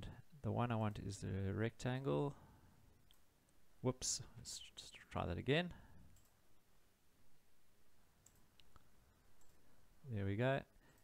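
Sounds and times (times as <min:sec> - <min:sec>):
computer mouse clicks: 0:06.1 - 0:06.4, 0:08.2 - 0:09.6.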